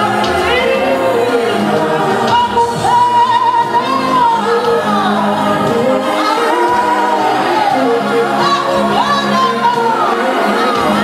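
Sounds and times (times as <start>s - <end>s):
worship singing with instruments: 0.0s - 11.0s.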